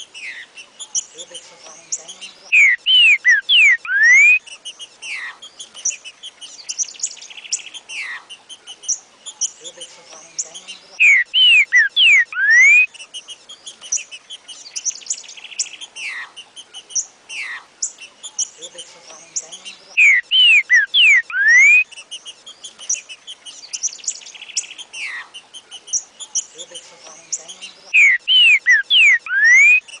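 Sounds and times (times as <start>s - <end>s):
bird trill: 0.0s - 30.0s
small high bird chirps: 0.0s - 30.0s
bird whistled song: 1.9s - 9.6s, 10.3s - 16.2s, 16.8s - 30.0s.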